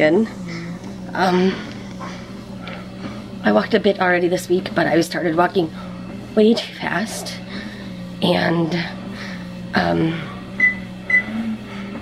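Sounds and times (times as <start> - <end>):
treadmill humming: 0.0 - 12.0.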